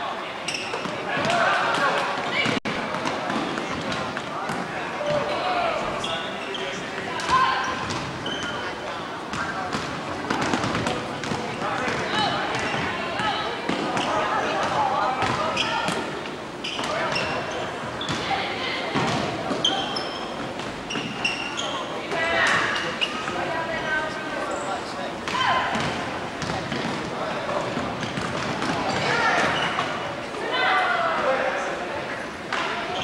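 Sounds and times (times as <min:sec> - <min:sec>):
sneaker squeaks: 0:00.4 - 0:01.4, 0:05.1 - 0:09.6, 0:10.6 - 0:14.6, 0:15.2 - 0:26.9, 0:28.0 - 0:30.0.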